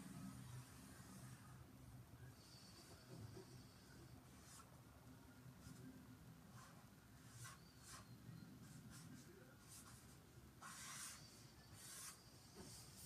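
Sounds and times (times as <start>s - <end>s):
pen scratching on paper: 6.5s - 13.0s.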